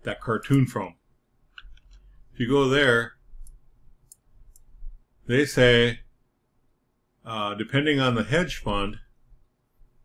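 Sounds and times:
faint computer mouse clicks: 0:01.5 - 0:02.1, 0:03.4 - 0:04.7.

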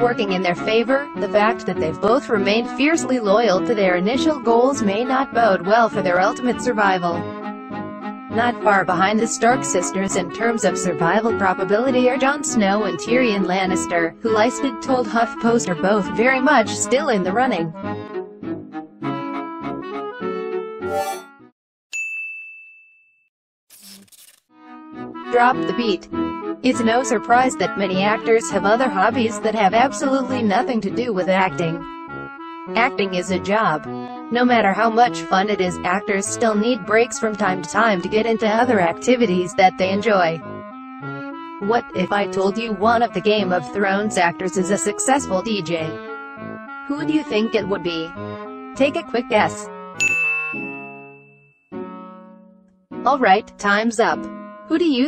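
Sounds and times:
bright bell-like ding: 0:22.0 - 0:23.3, 0:50.0 - 0:51.7.

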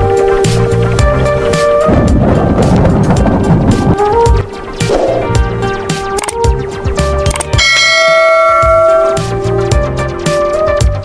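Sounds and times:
beat-driven background music: 0:00.0 - 0:11.0
bright bell chime: 0:07.6 - 0:09.2.

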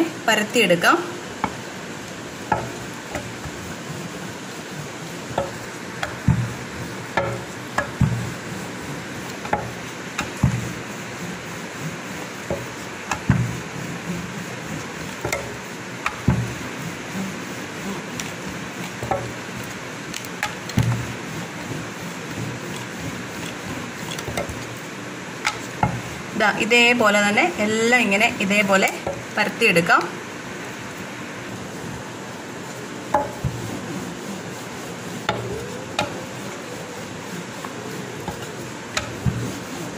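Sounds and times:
steady hiss: 0:00.0 - 0:39.9
dough knocking on board: 0:02.5 - 0:03.7, 0:05.3 - 0:08.4, 0:09.4 - 0:10.9, 0:12.4 - 0:13.7, 0:15.0 - 0:16.7, 0:18.2 - 0:19.4, 0:20.4 - 0:24.7, 0:33.2 - 0:33.8, 0:37.6 - 0:39.8.

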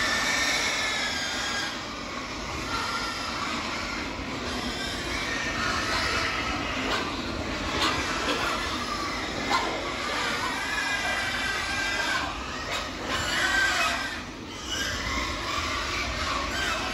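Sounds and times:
pigs grunting and squealing: 0:00.0 - 0:16.9
ventilation fans running: 0:00.0 - 0:16.9.

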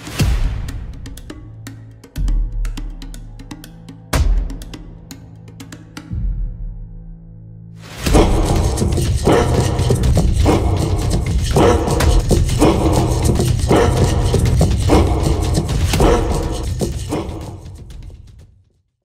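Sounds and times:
people shouting in rhythm: 0:08.1 - 0:17.7
music with heavy steady beat: 0:08.1 - 0:18.4.

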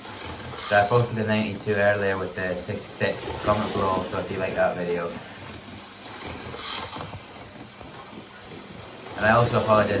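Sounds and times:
model train whirring on track: 0:00.0 - 0:10.0.

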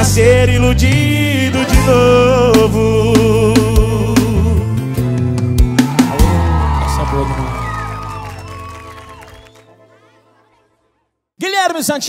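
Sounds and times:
country song with guitar: 0:00.0 - 0:06.4.

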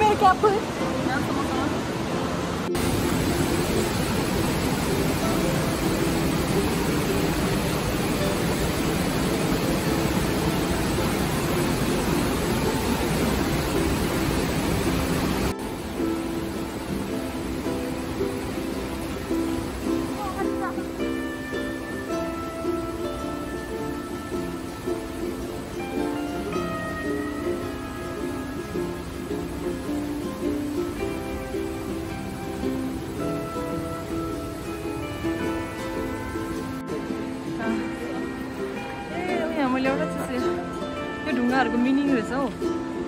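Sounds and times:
mountain torrent rushing: 0:00.0 - 0:43.0
ukulele music: 0:00.0 - 0:43.0.

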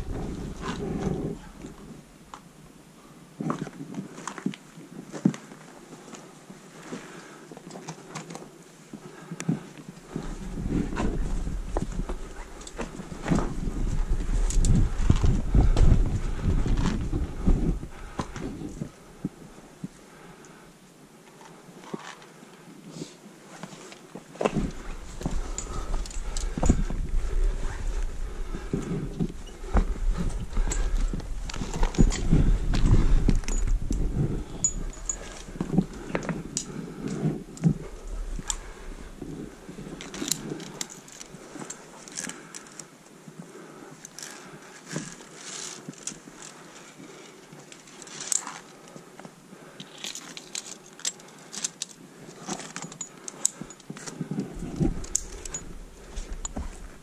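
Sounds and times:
low wind rumble on microphone: 0:00.0 - 0:02.3, 0:10.1 - 0:20.0, 0:24.4 - 0:41.6, 0:54.2 - 0:57.0
boots scrambling over rock: 0:24.3 - 0:41.7
metallic clinks of gear: 0:29.4 - 0:36.7, 0:49.8 - 0:57.0.

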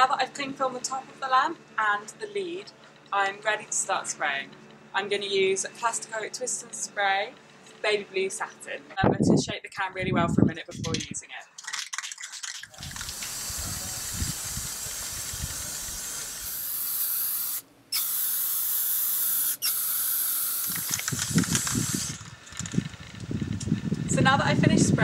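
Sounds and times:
aerosol paint can spraying: 0:12.8 - 0:22.2.

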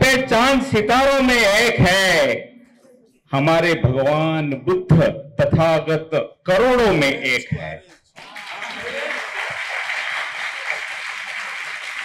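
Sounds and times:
audience applauding: 0:08.2 - 0:12.0.

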